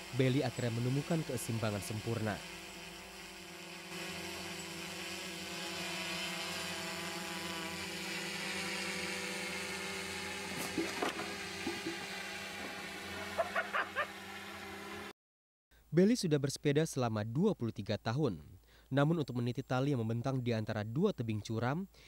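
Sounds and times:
machine-like hum with tones: 7.7s - 15.1s.

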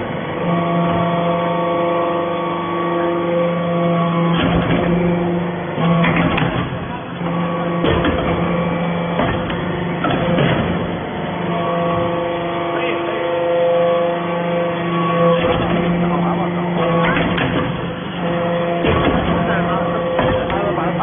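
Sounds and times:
hydraulic pump motor hum: 0.0s - 21.0s.

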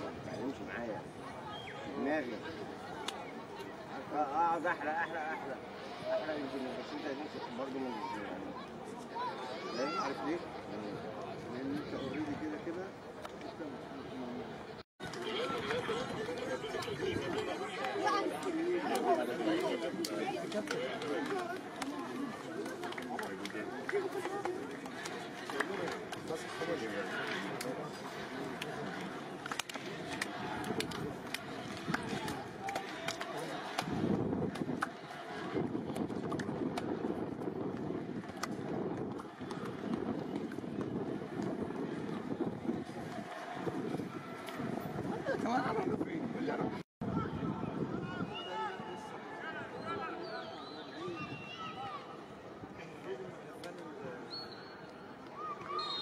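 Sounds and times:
murmur of people talking: 0.0s - 56.0s.

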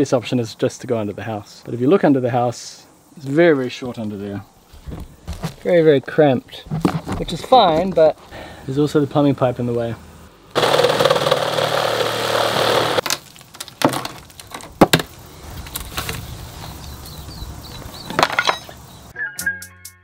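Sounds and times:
knocks and scrapes on timber: 4.7s - 5.6s, 6.6s - 8.1s
music: 19.1s - 20.0s.

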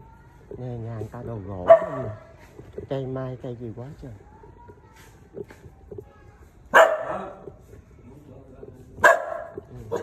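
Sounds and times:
dog barking: 1.6s - 2.3s, 6.7s - 7.4s, 9.0s - 10.0s.

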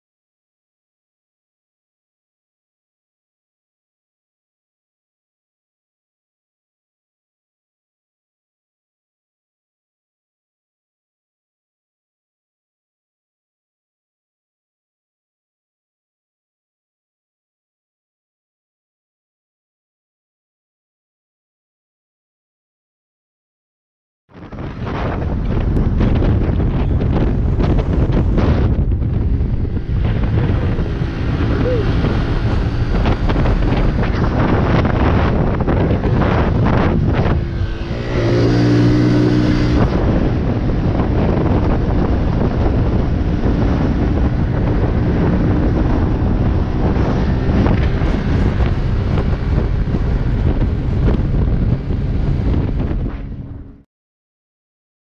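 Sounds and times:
wind buffeting microphone: 24.3s - 53.8s
motorbike engine: 24.5s - 53.8s
pitched tone: 30.4s - 32.8s.

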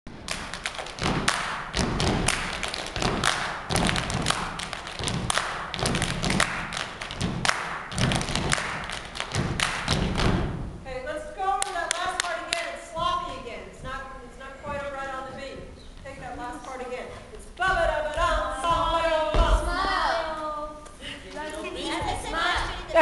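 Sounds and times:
people stomping and clapping: 0.2s - 10.7s, 17.7s - 19.9s
voices: 10.9s - 23.0s.

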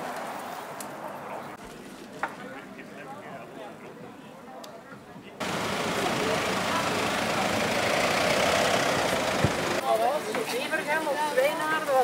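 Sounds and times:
indistinct voices: 5.4s - 9.8s
vehicle engine idling: 5.4s - 9.8s.

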